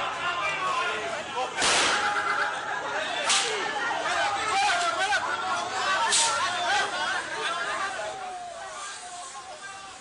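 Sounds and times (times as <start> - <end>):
people's voices on a street: 0.0 - 10.0.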